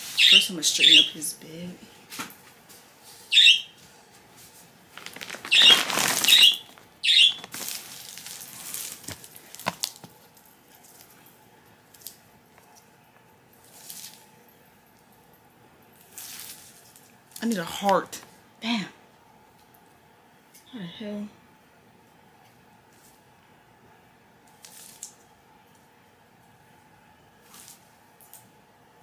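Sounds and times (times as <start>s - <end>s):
bedding rustling: 4.0s - 11.0s
short high-pitched squeaks: 5.4s - 7.5s.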